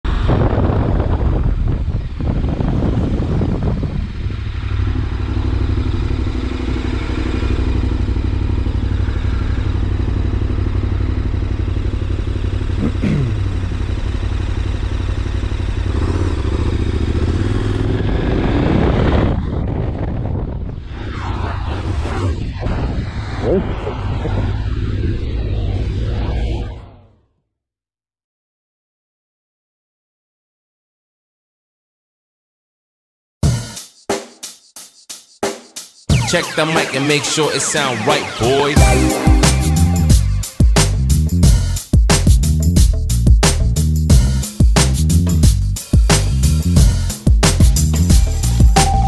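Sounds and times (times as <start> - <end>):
wind noise: 0.1 - 5.0, 17.4 - 27.0
motorcycle engine drone: 0.1 - 27.2, 36.1 - 41.8, 42.6 - 49.0.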